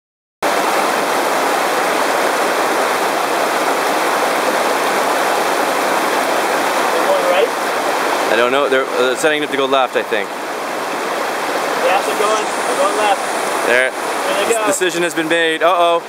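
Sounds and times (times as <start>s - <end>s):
river rapids rushing over rocks: 0.4s - 16.0s.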